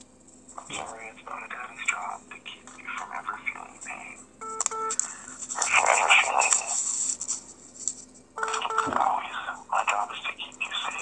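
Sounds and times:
breathy speech-like sound: 0.6 - 4.2, 5.1 - 6.8, 9.0 - 11.0
electronic phone beeps: 4.4 - 5.0, 8.4 - 9.0.

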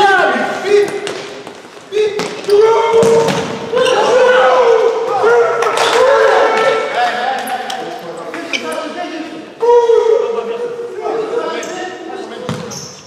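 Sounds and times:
players shouting: 1.9 - 8.0
ball thudding on hall floor: 2.2 - 3.7.

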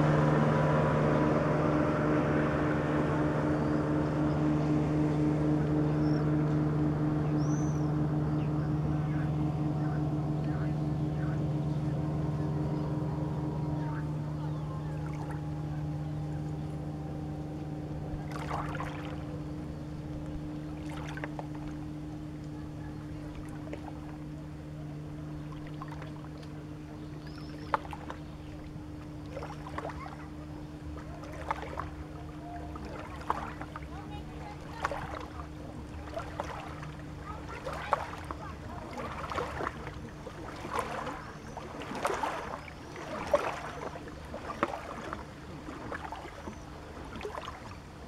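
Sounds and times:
boat wake lapping at shore: 0.0 - 48.0
distant motorboat engine humming: 0.0 - 48.0
high engine whine: 0.0 - 48.0.

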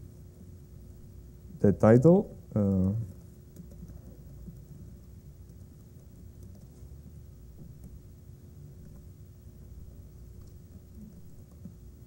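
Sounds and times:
steady hum: 0.0 - 12.0
keystrokes on computer keyboard: 2.7 - 8.1, 8.7 - 9.2, 9.8 - 11.9.

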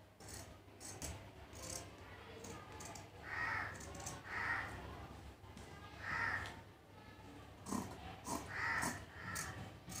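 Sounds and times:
crows cawing: 3.2 - 4.8, 6.0 - 6.6, 8.5 - 9.6.

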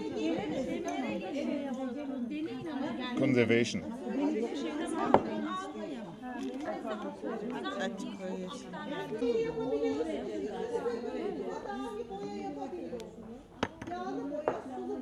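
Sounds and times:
indistinct chatter: 0.0 - 15.0.

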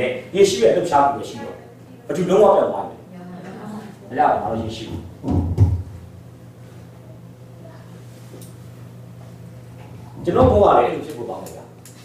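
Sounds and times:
low steady hum: 0.0 - 12.0
microphone being bumped: 5.2 - 6.1.

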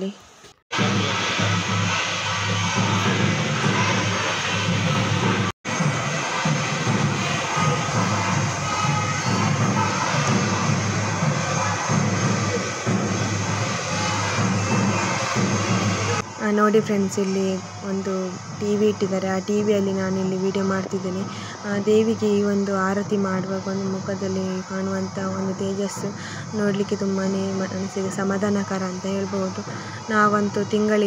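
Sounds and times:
crowd noise: 0.7 - 31.0.

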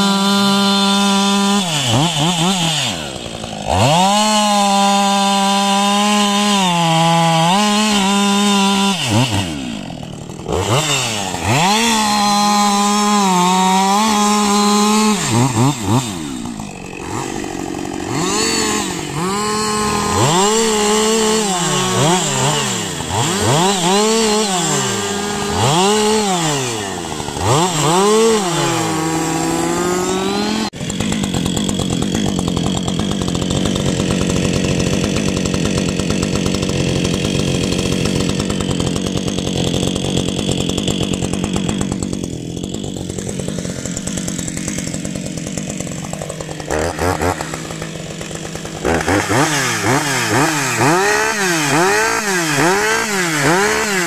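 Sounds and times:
chainsaw engine revving: 0.0 - 54.0
chainsaw running steadily: 0.0 - 54.0.

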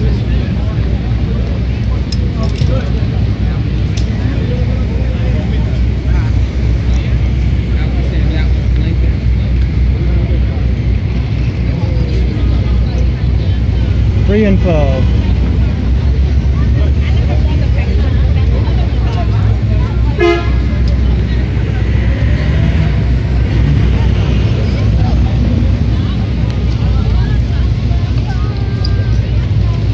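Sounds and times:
crowd chatter: 0.0 - 29.9
traffic rumble: 0.0 - 29.9
vehicle horn toot: 20.1 - 20.8.

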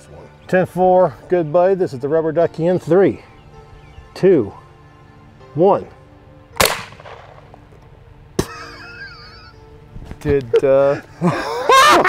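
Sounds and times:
shotgun shot with echo: 6.6 - 7.6.

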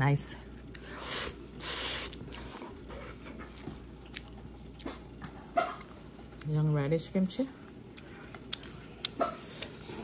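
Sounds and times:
person chewing food: 0.6 - 6.5, 7.6 - 10.0.

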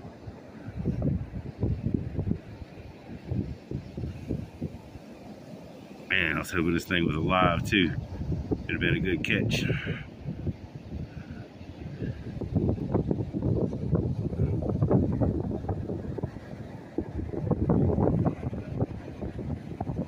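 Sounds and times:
wind buffeting microphone: 0.0 - 20.0.

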